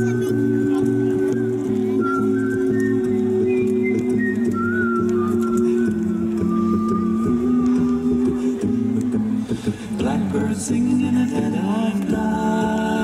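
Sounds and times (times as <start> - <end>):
male a cappella group singing: 3.1 - 13.0.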